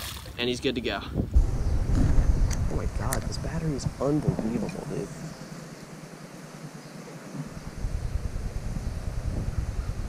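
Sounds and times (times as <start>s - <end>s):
wind buffeting microphone: 0.9s - 10.0s.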